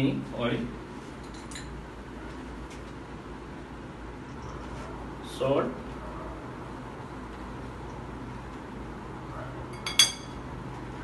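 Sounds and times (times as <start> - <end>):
kitchenware clinking: 9.7 - 10.5.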